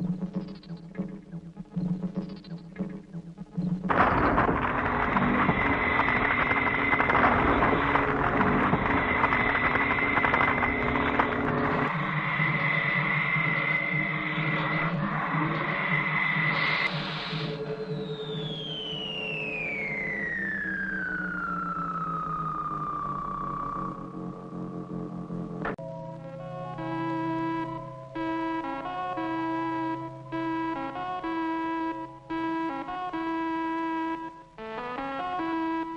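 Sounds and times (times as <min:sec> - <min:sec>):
steady high whine: 0:00.0 - 0:34.7.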